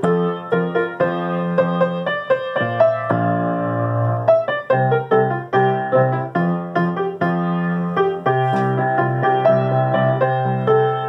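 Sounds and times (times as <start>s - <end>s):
piano melody with chords: 0.0s - 11.0s.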